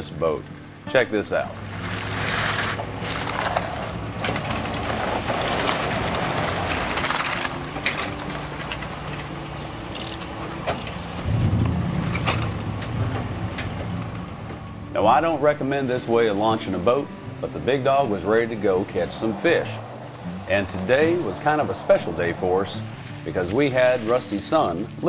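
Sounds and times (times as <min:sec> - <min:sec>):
brief high chirp: 0:08.7 - 0:10.2.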